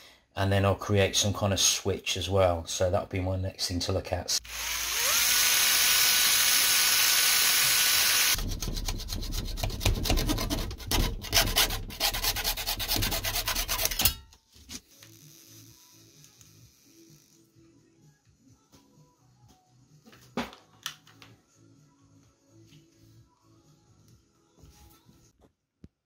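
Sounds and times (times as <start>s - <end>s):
cordless drill whining: 4.4s - 8.4s
hacksaw cutting: 4.5s - 14.2s.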